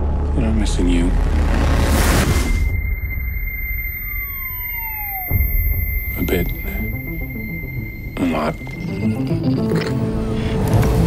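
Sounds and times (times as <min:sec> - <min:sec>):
low rumble: 0:00.0 - 0:09.2
descending whine: 0:00.0 - 0:10.3
high electronic tone: 0:01.9 - 0:10.2.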